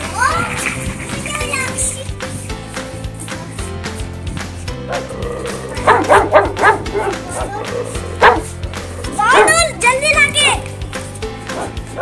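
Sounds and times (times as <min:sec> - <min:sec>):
background music: 0:00.0 - 0:12.0
puppy barking: 0:04.9 - 0:09.8, 0:11.5 - 0:12.0.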